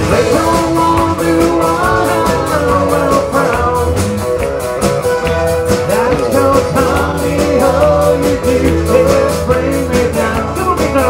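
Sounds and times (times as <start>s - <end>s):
drums keeping steady beat: 0.0s - 11.0s
strummed acoustic guitars: 0.0s - 11.0s.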